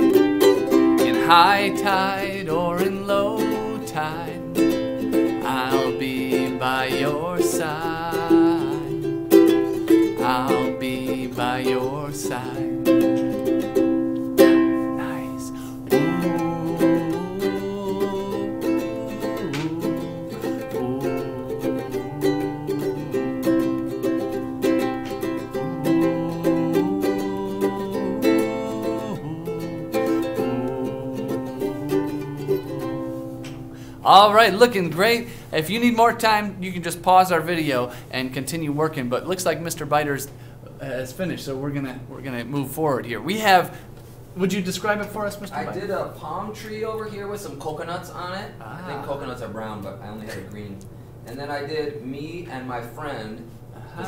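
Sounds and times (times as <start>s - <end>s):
man singing: 0.0s - 13.6s, 14.9s - 24.3s, 25.3s - 33.1s, 34.0s - 35.2s
ukulele strumming: 0.0s - 35.2s.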